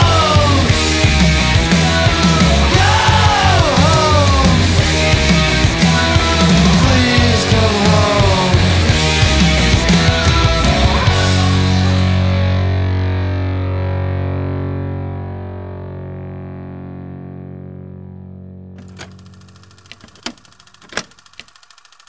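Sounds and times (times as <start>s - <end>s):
distorted electric guitar chord: 0.0s - 18.8s
sharp clicks: 18.8s - 22.0s.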